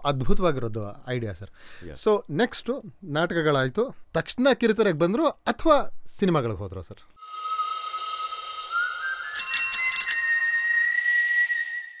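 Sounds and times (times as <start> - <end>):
bright bell-like chimes: 7.2 - 12.0.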